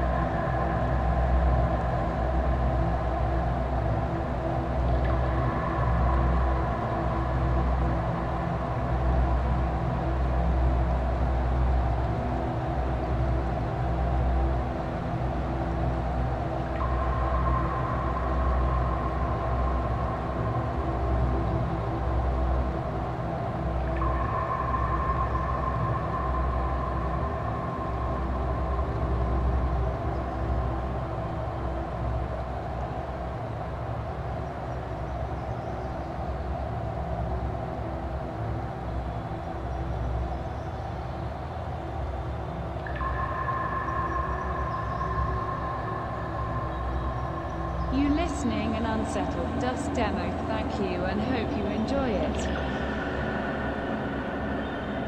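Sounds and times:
low rumble drone: 0:00.0 - 0:55.0.

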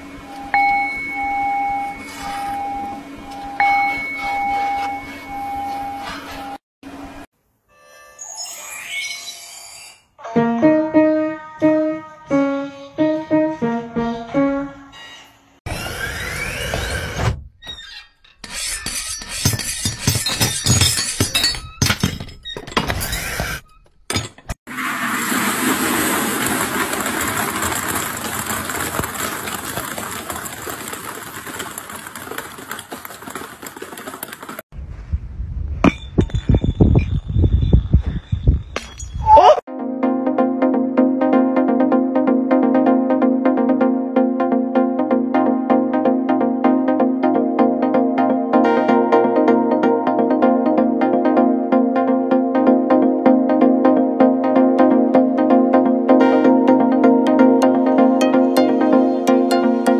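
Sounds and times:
piano melody: 0:10.3 - 0:14.9, 0:39.7 - 0:59.9.

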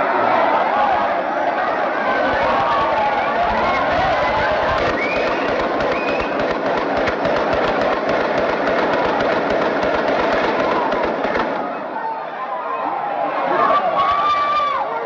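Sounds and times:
people's voices: 0:00.0 - 0:15.0
rapid gunshots: 0:01.6 - 0:11.9.

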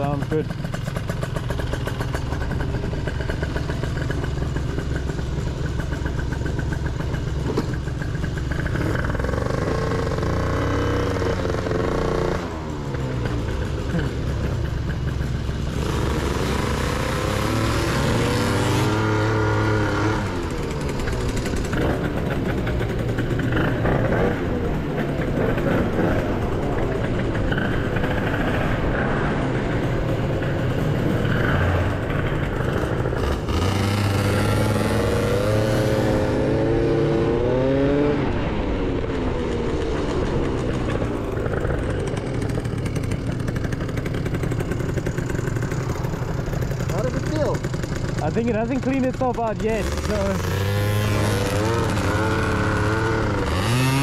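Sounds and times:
two-stroke scooter engines revving: 0:00.0 - 0:54.0.

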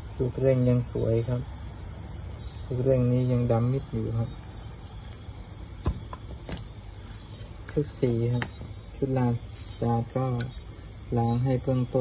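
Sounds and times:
crickets chirping: 0:00.0 - 0:12.0
man talking: 0:02.7 - 0:04.4, 0:07.7 - 0:12.0.

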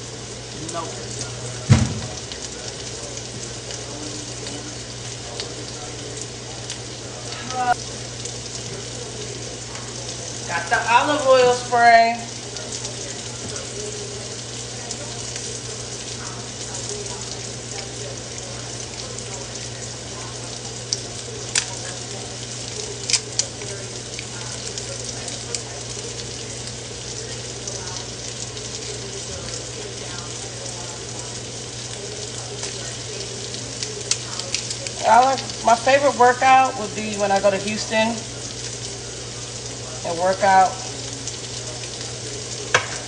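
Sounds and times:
sausages sizzling in a pan: 0:00.0 - 0:43.0.

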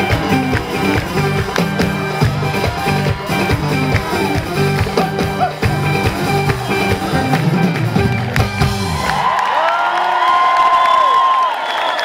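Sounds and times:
live band music with drum beat: 0:00.0 - 0:09.3
crowd cheering and whooping: 0:00.0 - 0:12.0.

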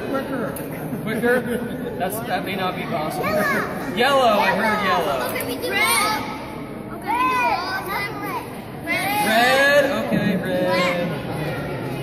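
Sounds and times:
children calling and chattering: 0:00.0 - 0:12.0.

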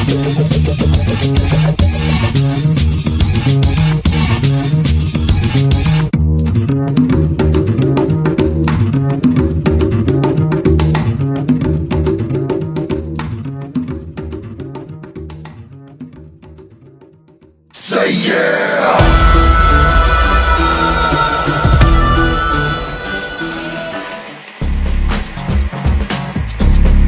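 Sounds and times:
band playing with bass line: 0:00.0 - 0:15.0, 0:19.0 - 0:27.0.

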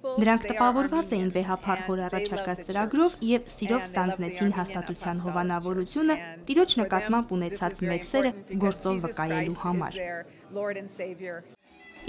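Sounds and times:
woman speaking: 0:00.0 - 0:11.5
music: 0:11.6 - 0:12.0.

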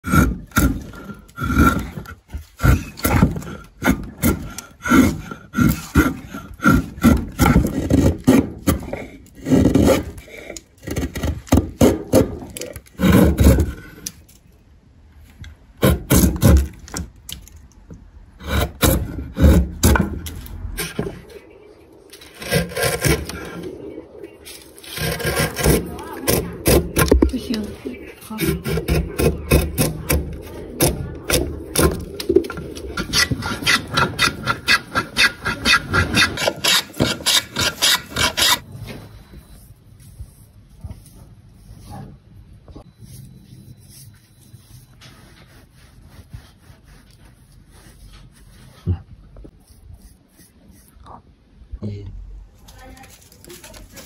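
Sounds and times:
chisel scraping wood: 0:00.0 - 0:14.2, 0:18.4 - 0:21.2, 0:22.1 - 0:23.8, 0:24.8 - 0:27.7, 0:28.3 - 0:38.6, 0:43.0 - 0:48.8.

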